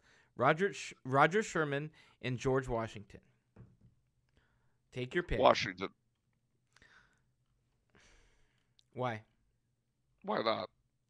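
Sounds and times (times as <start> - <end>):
faint breath or sigh: 6.8 - 7.2, 7.9 - 8.7.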